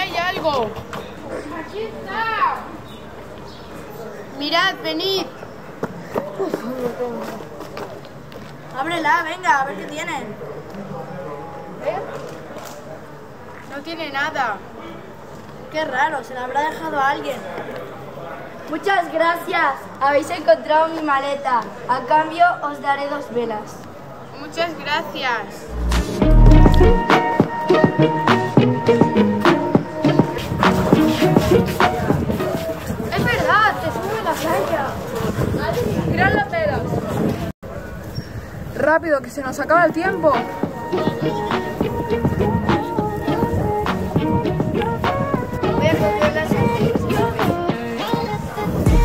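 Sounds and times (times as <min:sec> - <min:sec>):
children murmuring and exclaiming: 0:00.0 - 0:02.9, 0:40.0 - 0:49.0
footsteps: 0:25.7 - 0:27.0
melody with percussive hits: 0:25.7 - 0:29.7.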